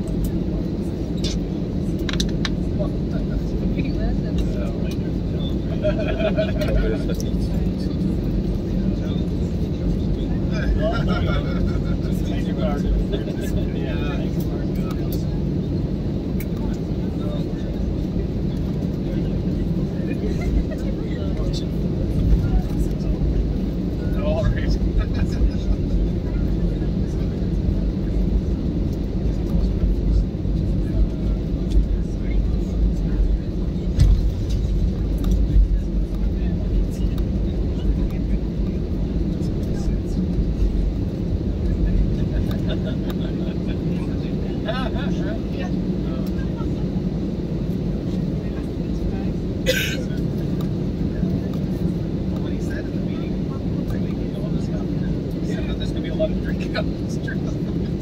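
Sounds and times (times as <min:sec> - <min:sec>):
aircraft rolling: 0:00.0 - 0:58.0
jet engines rumbling: 0:00.0 - 0:58.0.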